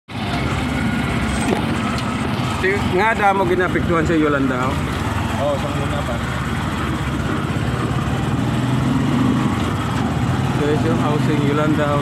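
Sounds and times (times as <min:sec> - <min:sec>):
motorcycle engine running: 0:00.1 - 0:12.0.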